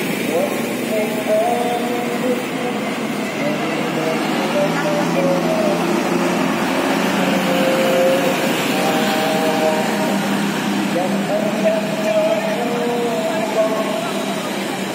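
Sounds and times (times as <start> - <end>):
coach bus driving past: 0.0 - 14.9
motorcycle traffic: 0.0 - 14.9
voices: 0.0 - 14.9.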